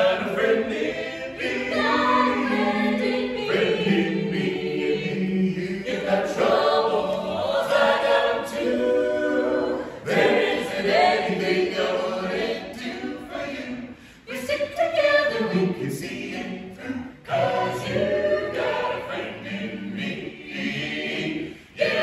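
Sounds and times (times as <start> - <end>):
vocal ensemble singing in harmony: 0.0 - 22.0.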